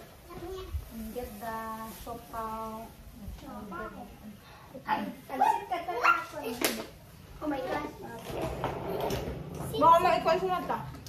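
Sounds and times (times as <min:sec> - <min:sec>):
women and children talking: 0:00.2 - 0:11.0.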